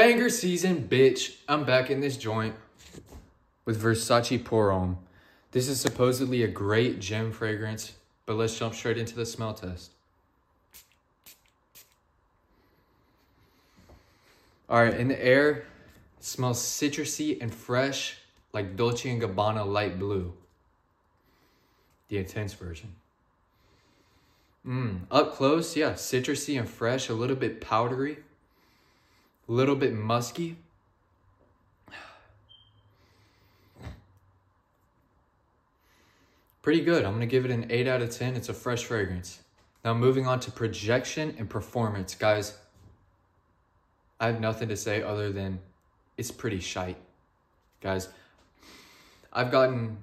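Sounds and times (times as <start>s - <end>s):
spray bottle hissing puffs: 10.8s - 12.0s.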